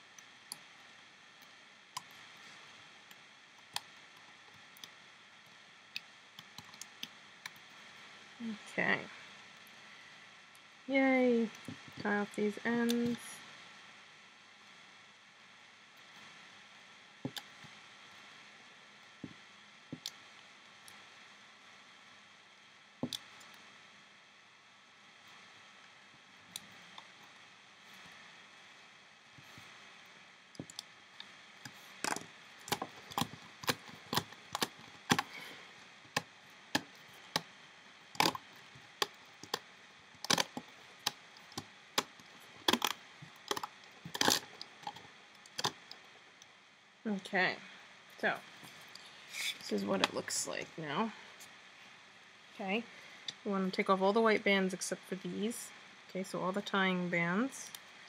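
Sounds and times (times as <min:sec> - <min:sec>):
plastic loom bands clicking and snapping: 0:32.0 - 0:35.4, 0:38.2 - 0:38.4, 0:39.0 - 0:39.6, 0:40.2 - 0:46.0.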